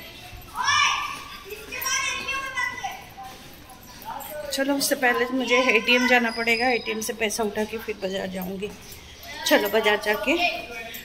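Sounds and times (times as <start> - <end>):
child calling out: 5.5 - 6.4.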